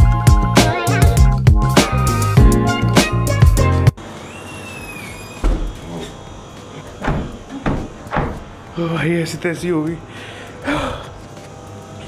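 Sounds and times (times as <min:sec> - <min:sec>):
background music: 0:00.0 - 0:04.0
man gasping breaths: 0:10.1 - 0:11.2.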